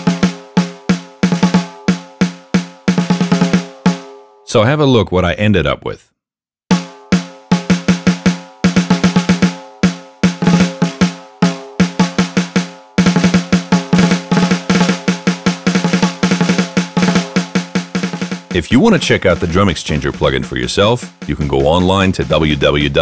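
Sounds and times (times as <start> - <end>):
snare drum strokes and rolls: 0.0 - 4.1, 6.7 - 23.0.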